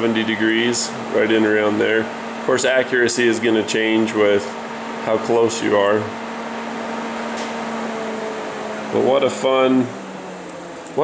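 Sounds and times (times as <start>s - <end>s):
fan whirring: 0.0s - 11.0s.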